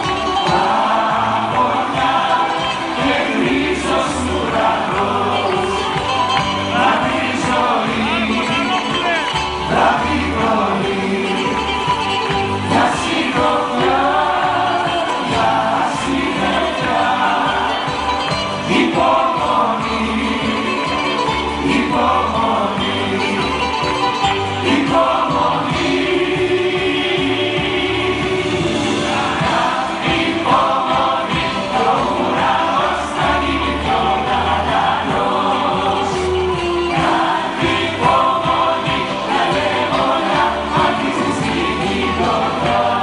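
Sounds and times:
group of singers singing: 0:00.0 - 0:43.0
live band playing: 0:00.0 - 0:43.0.

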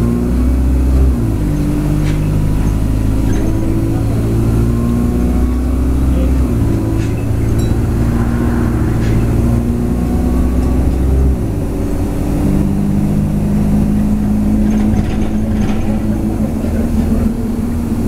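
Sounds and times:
bus engine drone: 0:00.0 - 0:18.0
road noise: 0:00.0 - 0:18.0.

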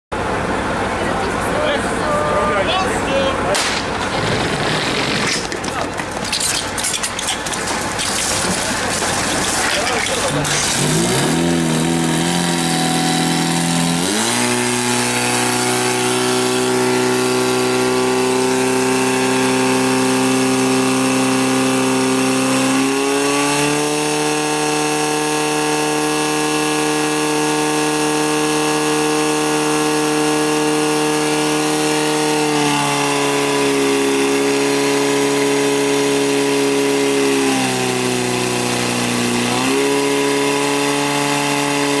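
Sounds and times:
pump engine running hard: 0:00.2 - 0:42.0
hoses spraying water: 0:03.7 - 0:42.0.

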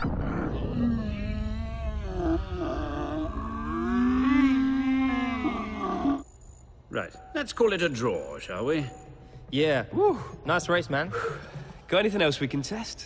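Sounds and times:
low rumble: 0:00.0 - 0:04.9.

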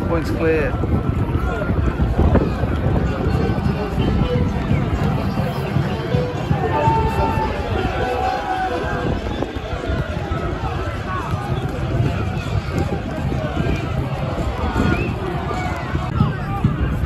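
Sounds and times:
crowd shouting and singing: 0:00.0 - 0:17.0
wind rumbling on microphone: 0:00.0 - 0:17.0.

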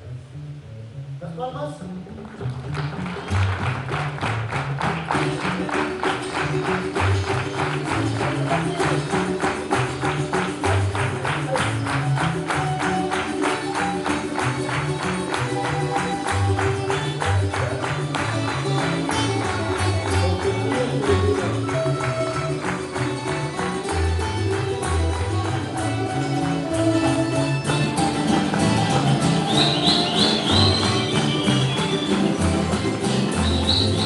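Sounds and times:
double bass line: 0:00.0 - 0:34.0
guitars strumming: 0:00.0 - 0:34.0
held melody line: 0:05.4 - 0:34.0.

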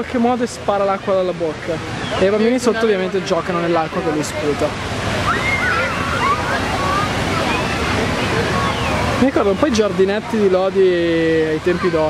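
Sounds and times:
fountain water splashing: 0:00.0 - 0:12.0
children shouting and squealing: 0:03.2 - 0:10.5, 0:11.4 - 0:12.0.

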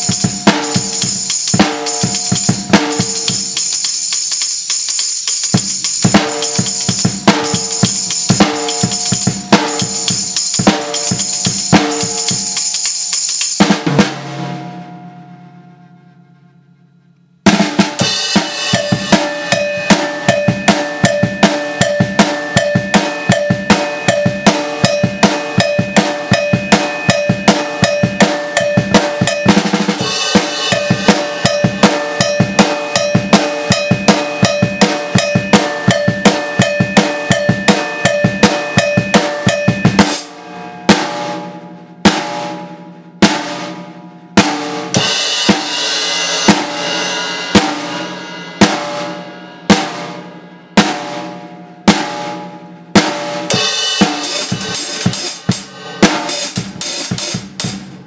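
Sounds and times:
drum kit and cymbals playing: 0:00.0 - 0:15.5, 0:17.4 - 0:58.0.

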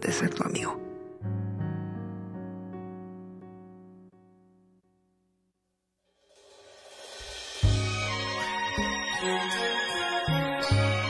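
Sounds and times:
piano chord: 0:00.0 - 0:05.0, 0:07.0 - 0:11.0
cymbal roll: 0:06.2 - 0:09.6.

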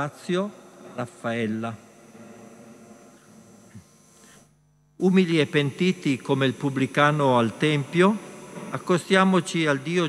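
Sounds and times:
faint electrical hum and buzz: 0:00.0 - 0:10.0.

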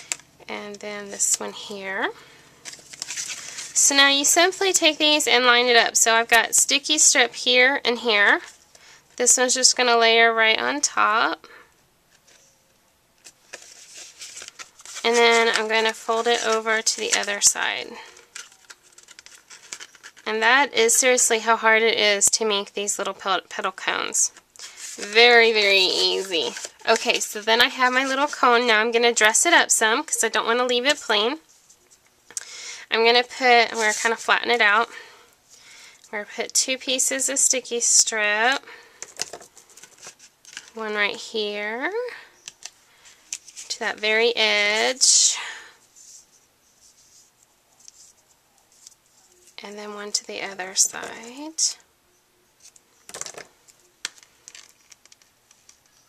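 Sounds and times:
paper rustling and crinkling: 0:02.6 - 0:03.8, 0:13.2 - 0:20.3, 0:24.3 - 0:28.6, 0:33.4 - 0:34.4, 0:39.0 - 0:40.8, 0:42.4 - 0:44.0, 0:52.6 - 0:56.0
small crackles: 0:02.6 - 0:03.8, 0:18.0 - 0:20.3, 0:52.6 - 0:56.0.

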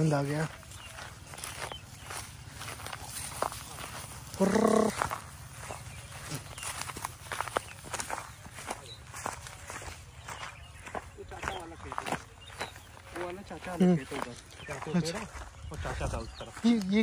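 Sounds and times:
footsteps through grass: 0:00.0 - 0:17.0.

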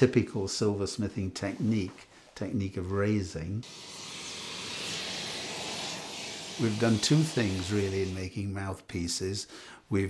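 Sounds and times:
molten metal pouring with hissing flame: 0:03.6 - 0:08.2.

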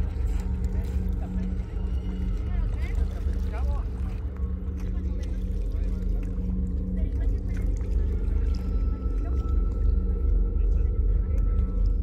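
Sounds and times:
faint voices talking: 0:00.0 - 0:12.0.

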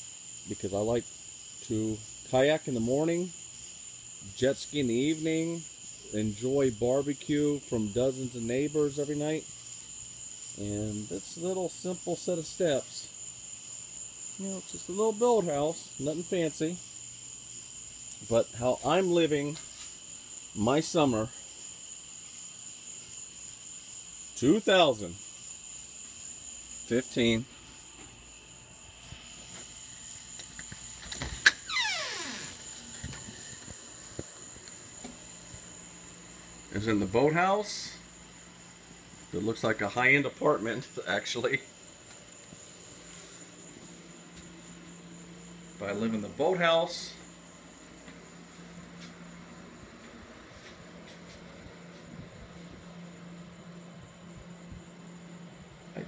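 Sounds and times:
crickets chirping: 0:00.0 - 0:56.0
appliances humming: 0:24.4 - 0:56.0
squeaky door hinge: 0:31.4 - 0:32.6.

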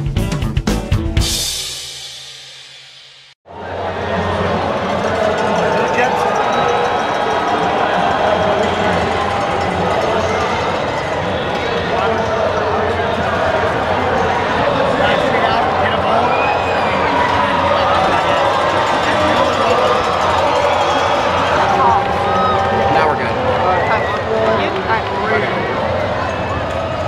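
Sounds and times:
drum-beat music: 0:00.0 - 0:03.3
arena crowd hubbub: 0:03.4 - 0:27.0.

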